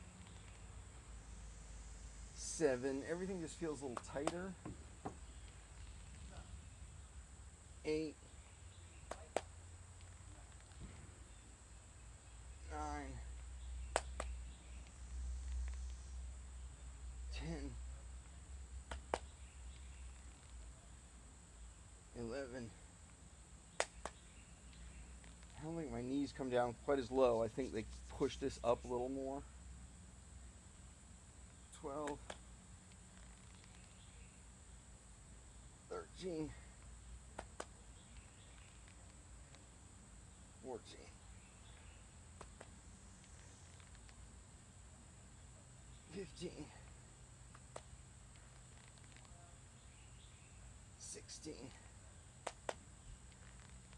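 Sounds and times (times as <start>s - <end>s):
man counting: 2.4s - 4.6s, 7.8s - 8.3s, 12.6s - 13.4s, 17.2s - 17.9s, 22.1s - 22.8s, 25.5s - 29.5s, 31.7s - 32.4s, 35.9s - 36.7s, 40.6s - 41.2s, 46.1s - 47.0s, 51.0s - 51.9s.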